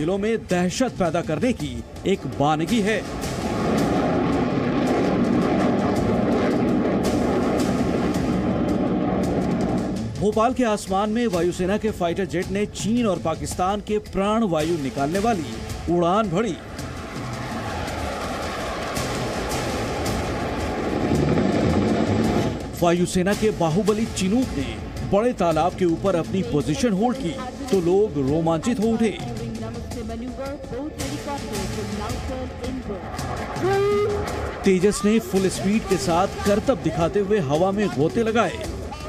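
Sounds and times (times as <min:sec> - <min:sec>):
jet engine rush: 0:01.9 - 0:10.2, 0:15.1 - 0:25.0, 0:32.6 - 0:38.8.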